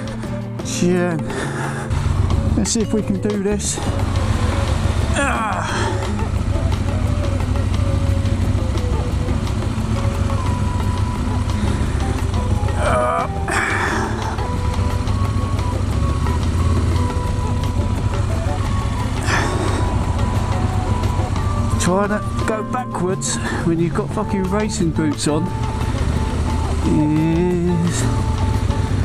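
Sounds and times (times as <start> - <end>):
motorcycle engine idling: 0.0 - 29.0.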